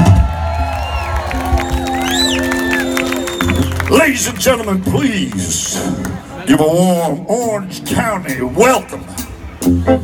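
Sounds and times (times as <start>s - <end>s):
crowd cheering and whooping: 0.0s - 4.1s
live band music: 1.2s - 10.0s.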